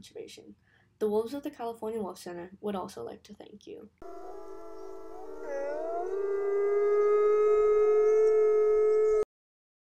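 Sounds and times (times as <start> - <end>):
wolves howling: 4.0 - 9.2.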